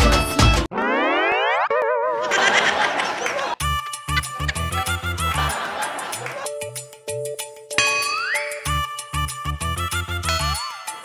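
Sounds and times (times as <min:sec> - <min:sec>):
beat-driven music: 0:00.0 - 0:11.0
wobbling boing: 0:00.7 - 0:02.3.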